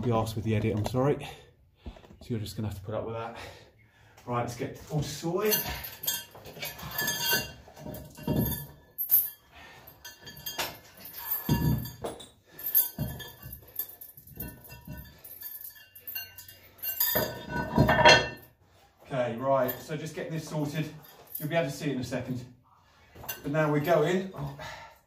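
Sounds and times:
metal chain and plates clinking: 4.8 - 18.8, 19.4 - 24.5.

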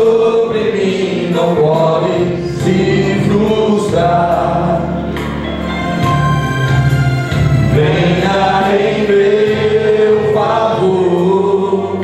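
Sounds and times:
man singing into a microphone: 0.0 - 5.1, 7.7 - 12.0
musical accompaniment: 0.0 - 12.0.

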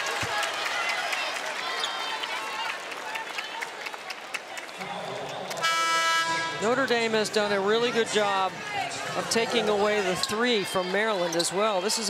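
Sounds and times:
arena crowd murmur: 0.0 - 12.0
arena horn buzzing: 5.6 - 6.8.

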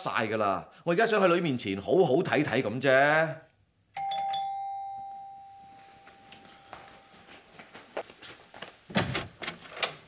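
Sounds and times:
doorbell chime ringing: 4.0 - 7.4.

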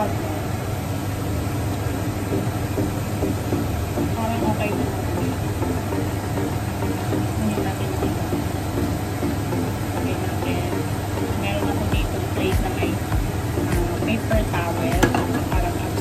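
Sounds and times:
low steady hum: 0.0 - 16.0
food sizzling in hot oil: 14.6 - 16.0.

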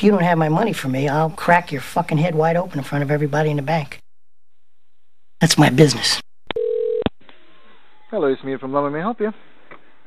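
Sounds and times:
telephone line tone: 6.5 - 7.1.

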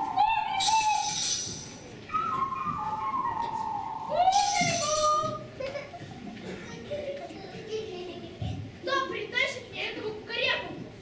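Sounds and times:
person whistling: 2.1 - 5.3.

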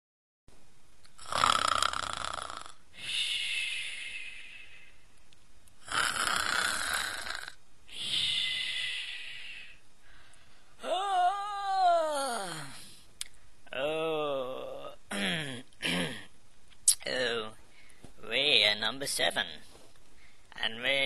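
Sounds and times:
cartoon snoring voice: 1.2 - 4.5, 5.8 - 9.8, 10.8 - 12.9, 13.7 - 16.2.

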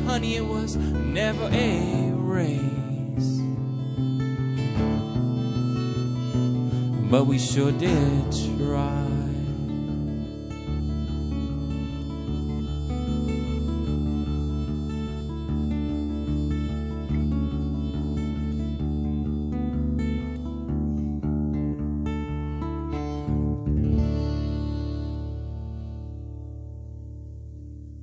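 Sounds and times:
harmonica: 0.0 - 26.9
acoustic guitar: 0.0 - 28.0.

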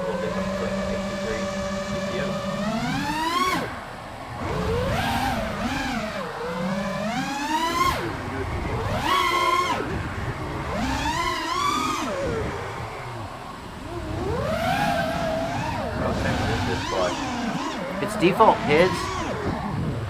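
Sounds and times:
quadcopter motors whining: 0.0 - 20.0.

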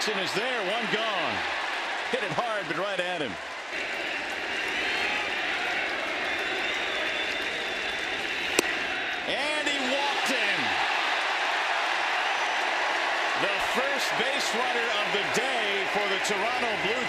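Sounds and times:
crowd noise: 0.0 - 17.0
crowd shouting: 3.4 - 17.0.

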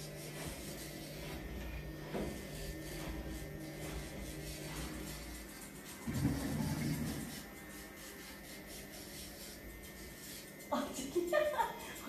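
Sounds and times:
electric nail grinder running: 0.0 - 12.0.

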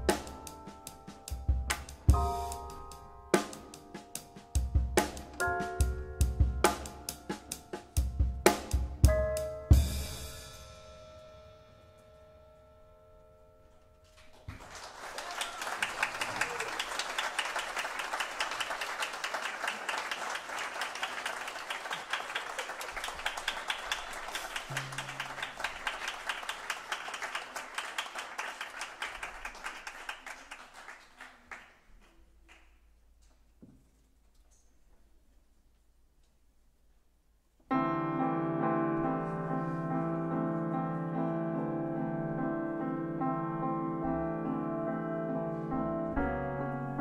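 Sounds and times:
jazz piano trio playing: 0.0 - 12.7, 37.7 - 47.0
drum and cymbal hits: 3.4 - 11.3
audience applauding: 14.2 - 32.8.

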